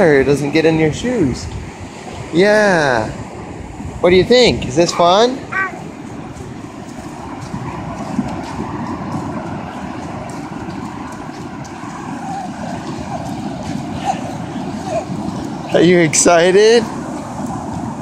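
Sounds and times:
ocean surf breaking: 0.0s - 18.0s
wind on microphone: 0.0s - 18.0s.

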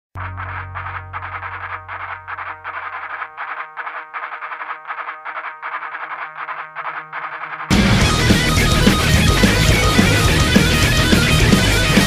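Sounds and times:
pulsing electric guitar: 0.2s - 12.0s
punk rock band playing: 6.4s - 12.0s.

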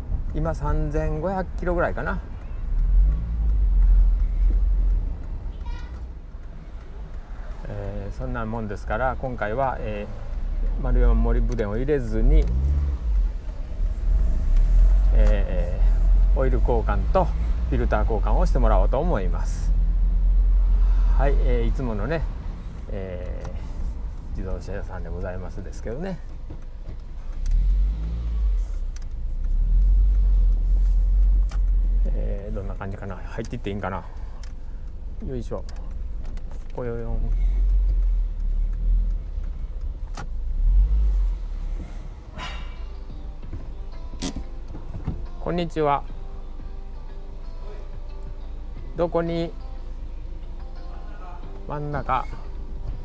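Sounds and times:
car engine rumble: 0.0s - 53.0s.

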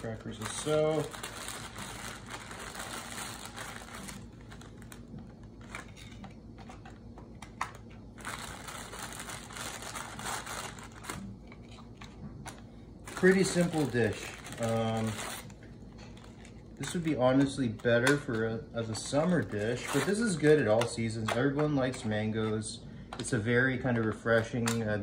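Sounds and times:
plastic wrapper crinkling: 0.0s - 20.9s.

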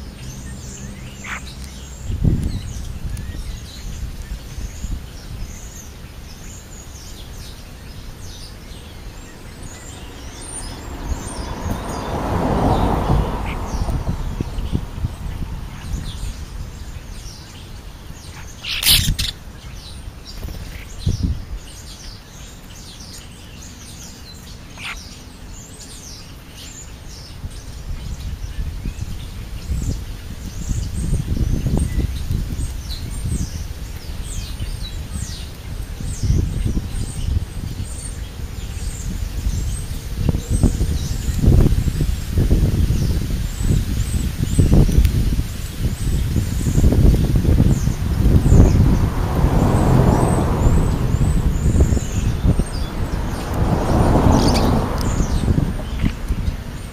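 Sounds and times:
low rumbling noise: 8.2s - 18.3s, 43.5s - 56.9s
high bird chirps: 18.3s - 25.2s.

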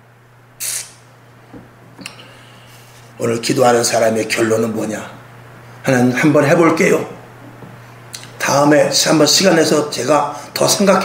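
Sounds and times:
steady low hum: 0.0s - 11.0s
short sharp hiss: 0.6s - 1.1s.

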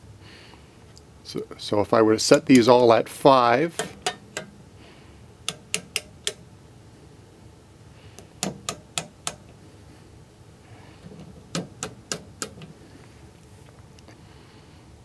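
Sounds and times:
rotary switches clicking: 2.3s - 3.0s, 3.7s - 4.5s, 5.4s - 6.4s, 8.2s - 9.5s, 11.5s - 12.7s.

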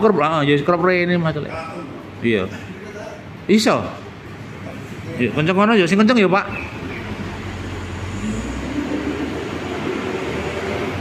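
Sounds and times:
road traffic rumble: 0.0s - 11.0s
vehicle engine passing: 6.5s - 11.0s.

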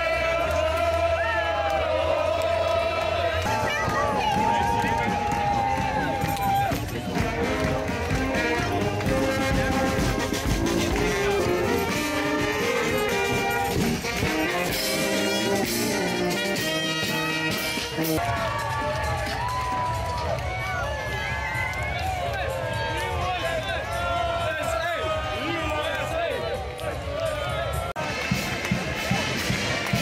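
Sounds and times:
crowd voices and cheering: 0.0s - 30.0s
brass band playing: 6.7s - 18.3s.

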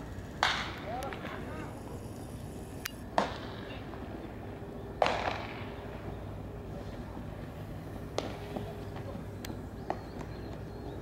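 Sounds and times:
steady background noise: 0.0s - 11.0s.

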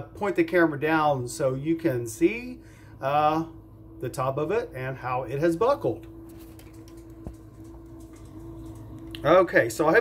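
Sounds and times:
kitchen appliance humming: 0.0s - 10.0s.

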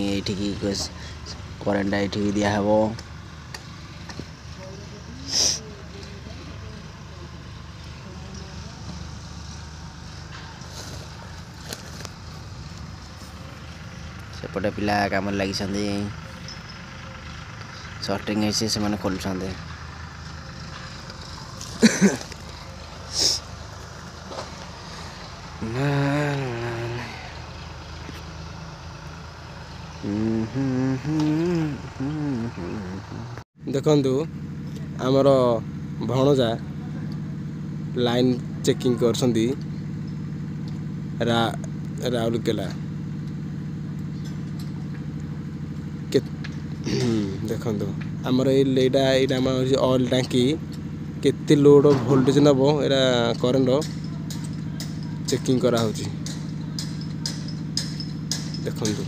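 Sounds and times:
low outdoor background rumble: 0.0s - 59.0s
low machine hum: 5.8s - 33.4s.

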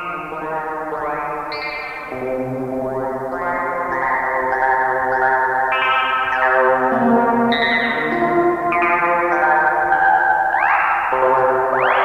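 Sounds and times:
buzzy synthesizer tone: 0.0s - 12.0s.

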